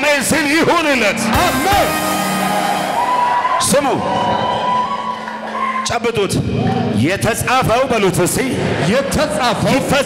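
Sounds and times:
sustained keyboard chord: 1.2 - 3.2.

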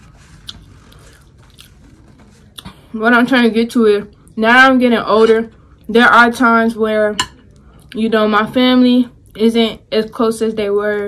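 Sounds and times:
person chewing food: 0.0 - 2.9.

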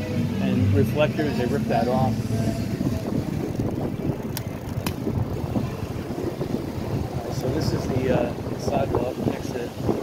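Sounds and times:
wind buffeting microphone: 1.4 - 10.0.

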